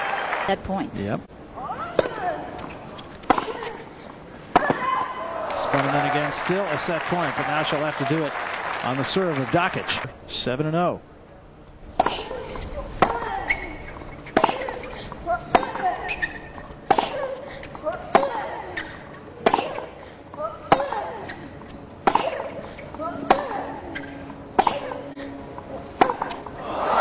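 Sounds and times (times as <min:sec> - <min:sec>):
crowd applause: 0:00.0 - 0:00.6, 0:05.2 - 0:10.1, 0:26.6 - 0:27.0
racket striking tennis ball: 0:01.9 - 0:02.3, 0:03.2 - 0:03.7, 0:14.2 - 0:14.9, 0:15.5 - 0:17.2, 0:20.7 - 0:21.0, 0:22.0 - 0:22.6, 0:23.2 - 0:23.6, 0:26.0 - 0:26.4
tennis ball bouncing: 0:01.9 - 0:03.8, 0:04.5 - 0:05.1, 0:11.9 - 0:25.0, 0:26.0 - 0:26.6.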